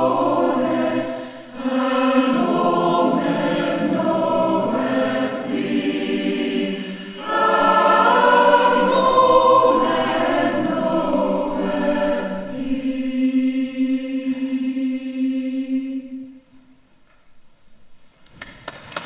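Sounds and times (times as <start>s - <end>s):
mixed choir singing a carol: 0.0s - 16.7s.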